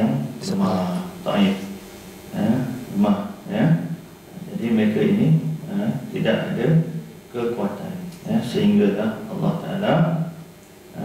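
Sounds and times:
man lecturing: 0.0 - 10.3.

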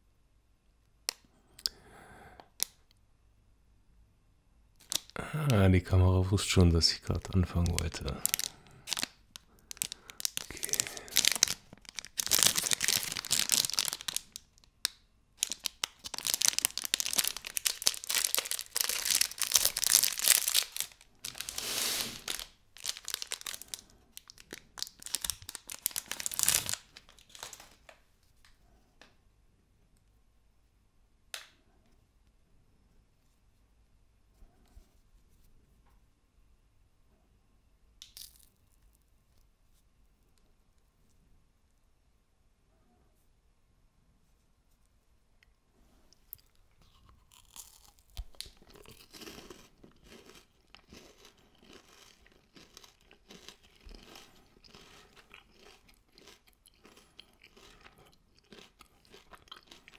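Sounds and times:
plastic wrapper tearing and crinkling: 4.8 - 5.6, 6.8 - 27.8.

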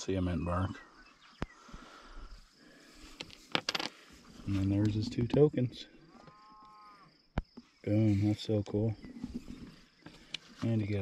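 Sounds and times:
faint handling noise: 3.0 - 6.4, 7.4 - 11.0.

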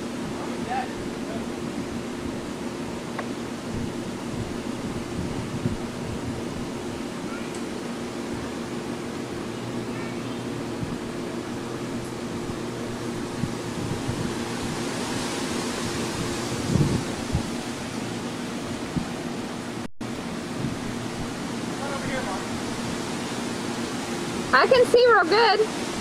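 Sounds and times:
steady hiss with low hum: 0.0 - 26.0.

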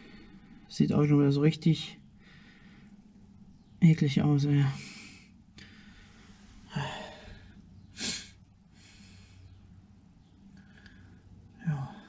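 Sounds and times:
faint low hum: 0.0 - 12.0
man breathing close to microphone: 2.2 - 3.0, 4.8 - 9.7
man sniffing: 8.0 - 8.4.

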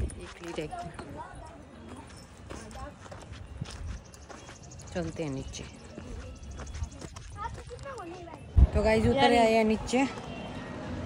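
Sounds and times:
footsteps on stone: 0.0 - 10.3
faint voices: 0.0 - 11.0.

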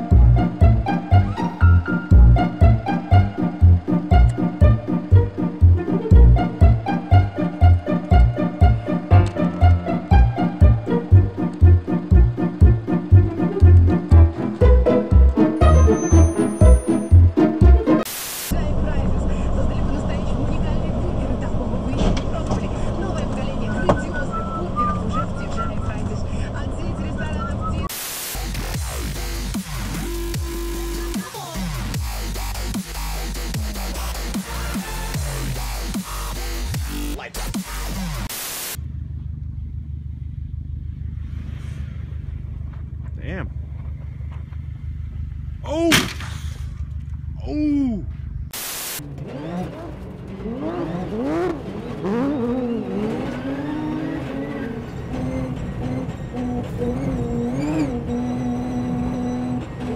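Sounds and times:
engine and road drone: 0.0 - 59.9
person whooping: 47.4 - 48.1.

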